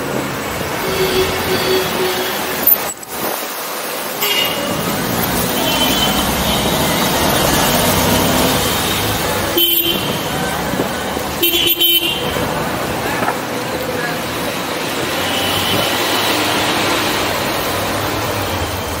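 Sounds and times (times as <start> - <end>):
city road traffic: 0.0 - 19.0
vehicle horns tooting: 0.8 - 2.8, 4.2 - 4.8, 8.8 - 10.4, 11.4 - 12.4.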